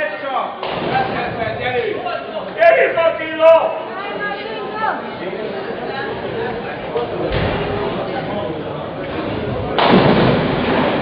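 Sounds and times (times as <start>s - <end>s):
bowling ball crashing into pins: 9.1s - 11.0s.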